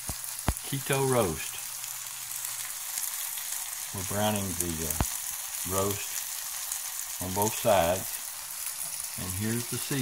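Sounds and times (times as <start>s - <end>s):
meat sizzling in oil: 0.0s - 10.0s.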